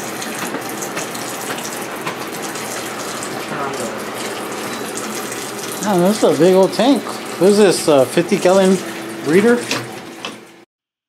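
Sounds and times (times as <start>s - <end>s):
running splashing water: 0.0s - 10.7s.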